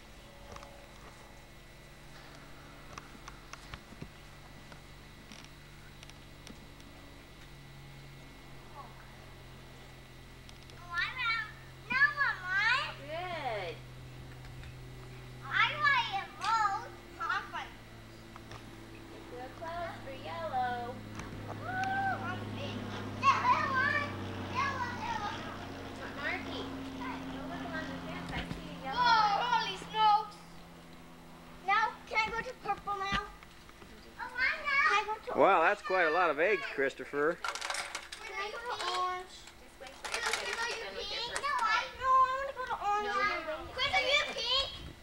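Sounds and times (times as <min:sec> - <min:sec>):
steady low hum: 0:00.0 - 0:45.0
children calling out and chattering: 0:15.3 - 0:17.9, 0:20.8 - 0:30.8, 0:34.1 - 0:37.0, 0:38.1 - 0:45.0.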